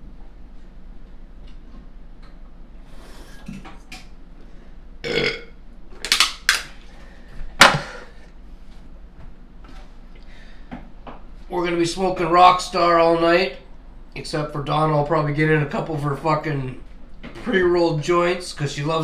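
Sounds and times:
man burping loudly: 5.0 - 5.6.

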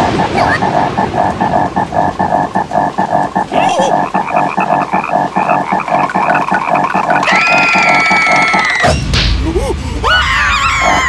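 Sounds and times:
cartoon frog croaking: 0.0 - 8.9, 10.8 - 11.0
high cartoon scream: 10.1 - 11.0.

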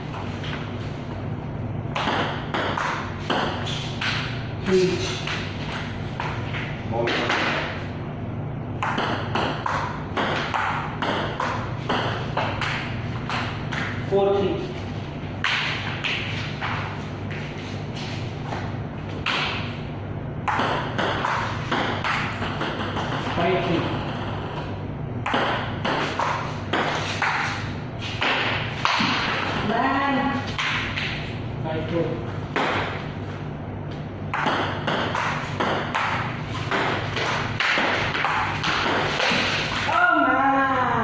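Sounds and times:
ping pong ball clicking: 8.8 - 14.0, 20.5 - 23.1.

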